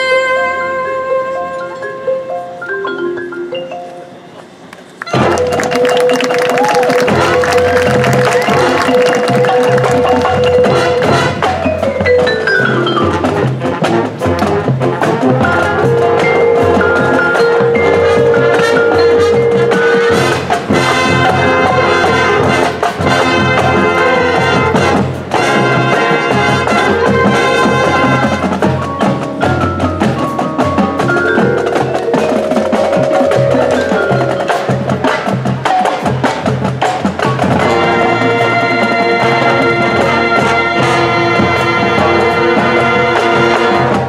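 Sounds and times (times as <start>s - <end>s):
marimbas: 0.0s - 44.0s
marching band playing: 2.6s - 44.0s
brass: 5.0s - 44.0s
drums: 5.0s - 44.0s.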